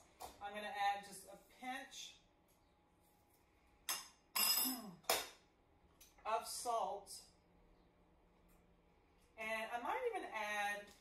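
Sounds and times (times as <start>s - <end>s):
woman clearing her throat: 4.6s - 5.1s.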